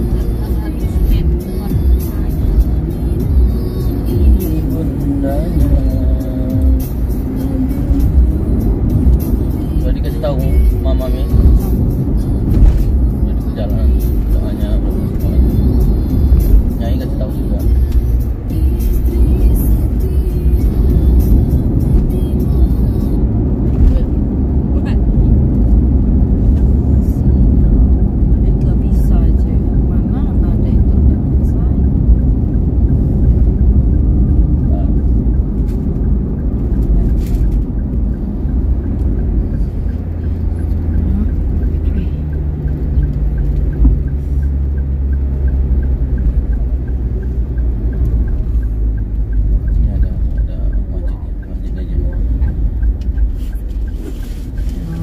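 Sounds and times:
music: 0.0s - 23.9s
car road and engine rumble: 0.0s - 55.0s
indistinct voices: 54.5s - 55.0s.

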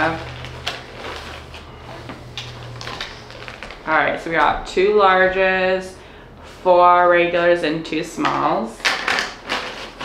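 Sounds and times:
plastic package rustling: 0.0s - 4.0s, 8.8s - 10.0s
steady low hum: 0.0s - 8.8s
plastic pieces knocking together: 8.8s - 10.0s.

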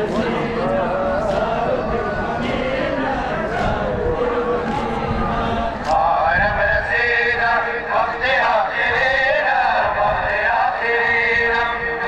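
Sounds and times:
large crowd noise: 0.0s - 12.0s
man chanting through loudspeakers: 0.0s - 12.0s.

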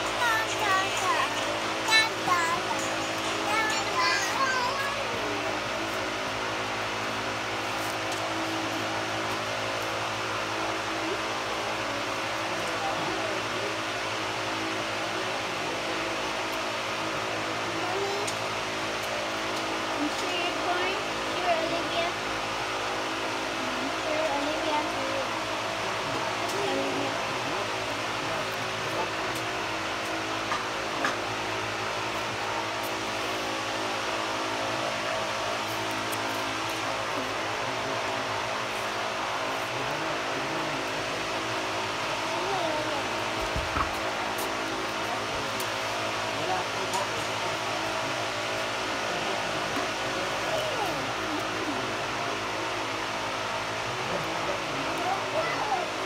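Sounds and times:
faint voices: 0.0s - 56.0s
steady mechanical hum: 0.0s - 56.0s.

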